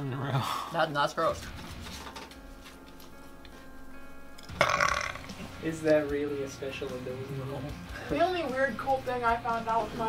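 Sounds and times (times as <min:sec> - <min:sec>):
quiet background music: 0:00.0 - 0:10.0
man burping: 0:04.5 - 0:05.5.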